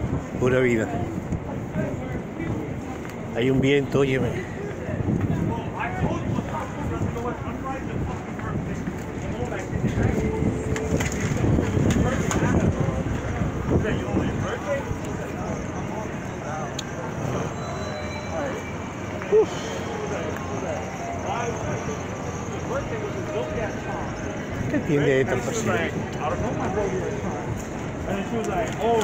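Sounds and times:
wind buffeting microphone: 0.0 - 16.4
traffic hum: 0.0 - 29.0
voices of passers-by: 0.0 - 29.0.

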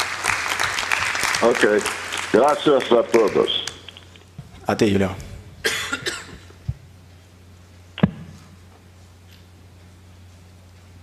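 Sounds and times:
sound system hum: 0.0 - 11.0
person coughing: 5.6 - 6.6.

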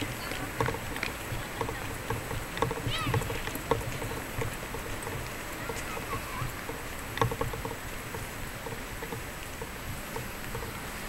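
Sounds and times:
footsteps on wet pavement: 0.0 - 11.0
outdoor background hum: 0.0 - 11.0.

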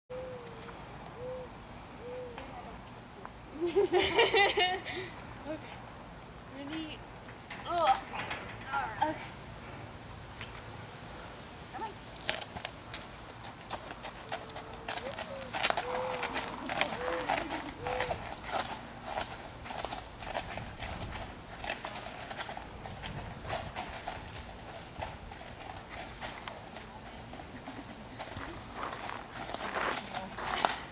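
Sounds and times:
dove cooing: 0.1 - 2.6, 14.3 - 18.4
horse hoofbeats on gravel: 11.8 - 30.9.

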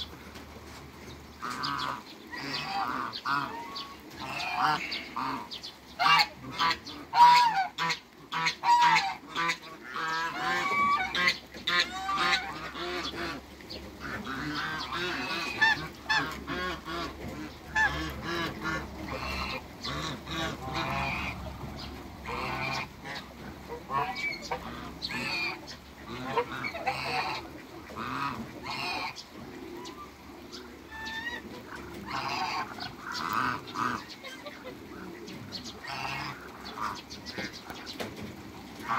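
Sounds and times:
geese and ducks honking: 0.0 - 38.9.

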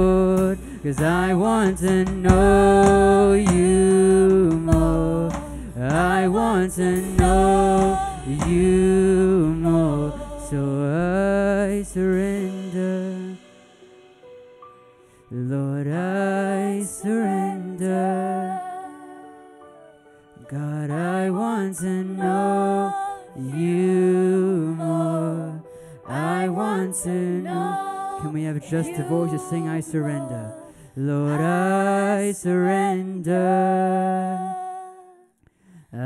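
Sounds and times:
bass guitar: 0.0 - 13.4
man singing: 0.0 - 13.5, 15.3 - 18.6, 20.4 - 22.6, 23.3 - 34.6.

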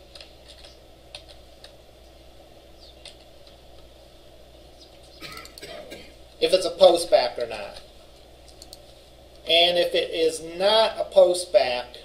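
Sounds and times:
faint steady hum: 0.0 - 12.0
typing on computer keyboard: 0.1 - 1.4.

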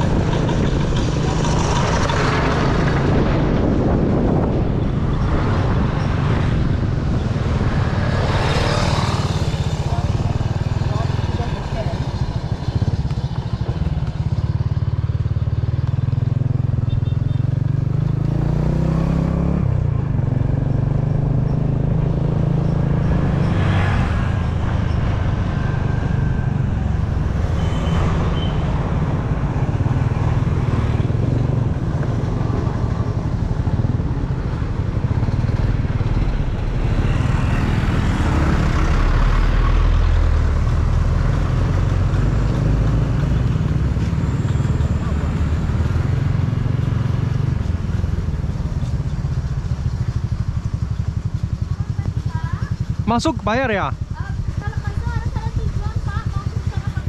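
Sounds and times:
wind rushing over microphone: 0.0 - 14.6, 18.3 - 49.6
motorcycle engine running: 0.0 - 57.0
vehicles passing by: 0.0 - 57.0.

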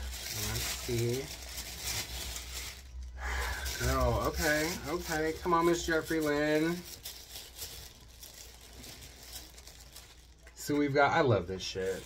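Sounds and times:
paper packaging crinkling: 0.0 - 12.0.

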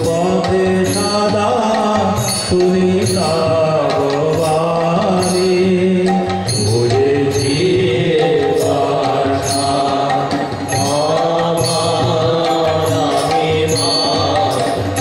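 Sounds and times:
light percussion strikes: 0.0 - 15.0
man singing melodic chant: 0.0 - 15.0.

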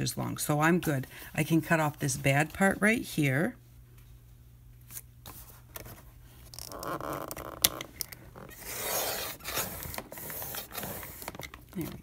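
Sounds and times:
paper trimmer blade scraping: 8.5 - 11.3.

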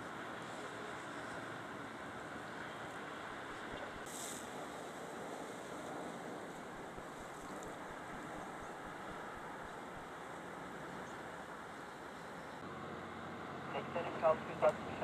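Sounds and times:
wind: 0.0 - 15.0
brief hiss: 4.0 - 4.6.

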